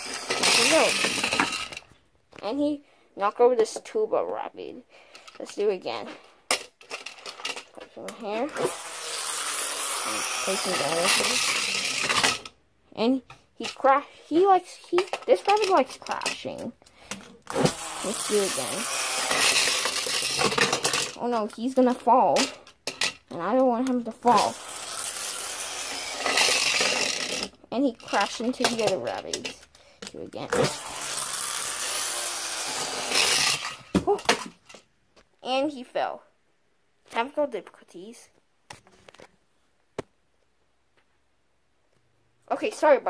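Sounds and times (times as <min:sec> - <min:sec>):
spinning top rasping whir: 0:00.0 - 0:01.8, 0:08.5 - 0:12.5, 0:17.5 - 0:21.2, 0:24.2 - 0:29.3, 0:30.5 - 0:33.9.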